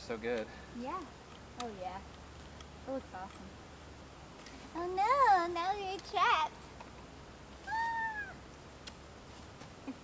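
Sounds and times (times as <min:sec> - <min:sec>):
high-pitched cry: 0:07.6 - 0:08.4.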